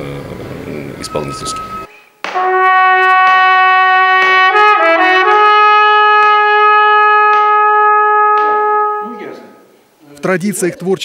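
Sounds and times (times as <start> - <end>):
trumpet long held note: 1.0 - 9.8.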